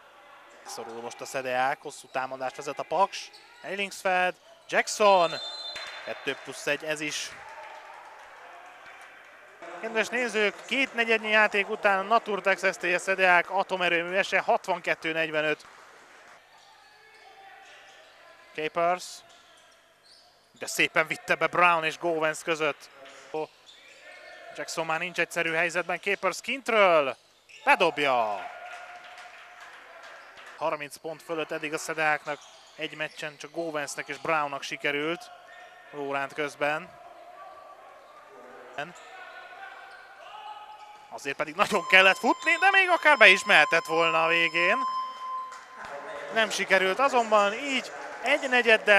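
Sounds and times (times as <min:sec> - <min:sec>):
players running on hardwood court: 0:05.2 - 0:18.2, 0:27.4 - 0:30.7, 0:41.6 - 0:48.9.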